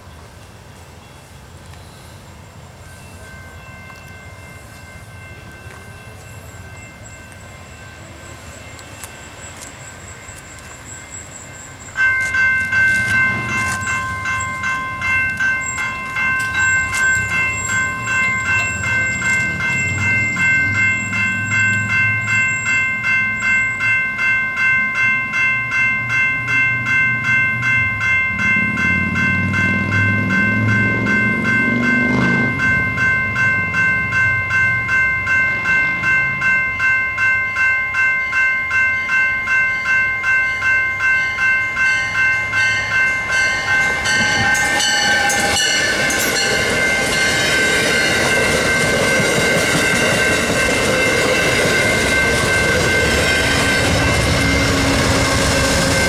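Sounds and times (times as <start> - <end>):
railroad crossing bell ringing: 0.0 - 56.0
train approaching: 0.0 - 56.0.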